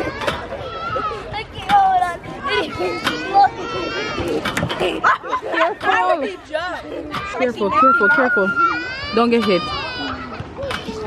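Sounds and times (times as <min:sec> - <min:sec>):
children squealing and laughing: 0:00.0 - 0:11.0.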